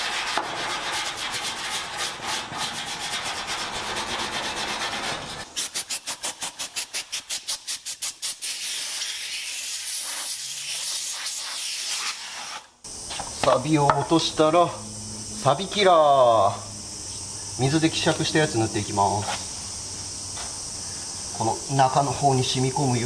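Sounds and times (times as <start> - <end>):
compressed-air blow gun hissing: 5.2 - 13.4.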